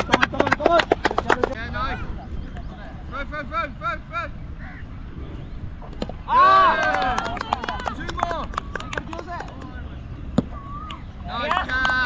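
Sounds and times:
low wind rumble: 0.0 - 12.0.

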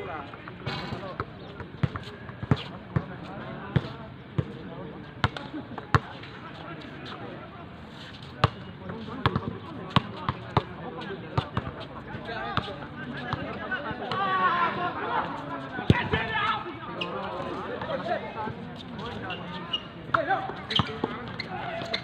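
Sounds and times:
players' voices: 0.0 - 22.0.

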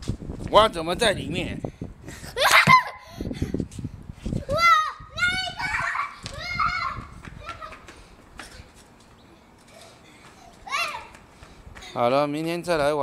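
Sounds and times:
child squealing and shouting: 4.4 - 7.8, 10.5 - 11.2.

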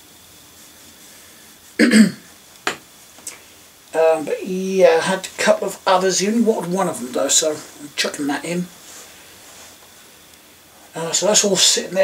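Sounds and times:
man coughing: 1.8 - 2.3.

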